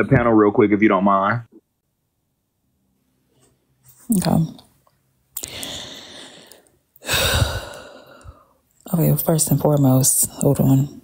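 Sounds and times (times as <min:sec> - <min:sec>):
person speaking: 0:04.0 - 0:04.6
person sighing: 0:05.4 - 0:08.5.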